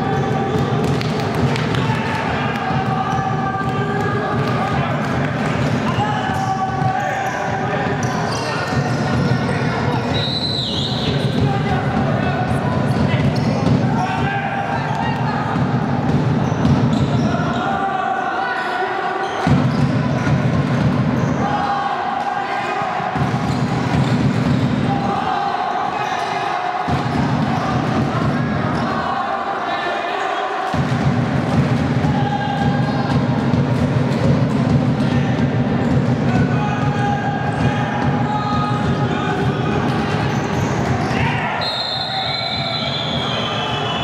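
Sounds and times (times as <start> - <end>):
voices in a hall: 0.0 - 44.0.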